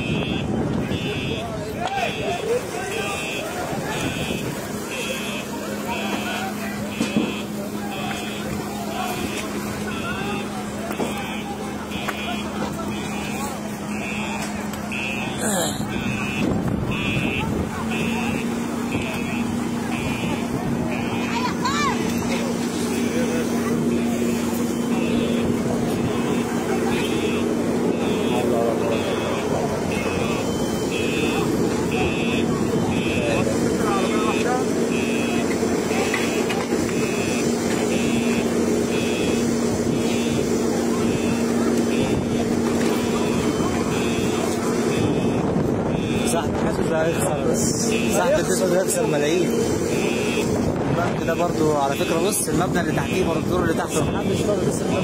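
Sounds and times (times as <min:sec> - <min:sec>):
crowd voices: 0:00.0 - 0:55.0
electronic alarm beeping: 0:00.0 - 0:55.0.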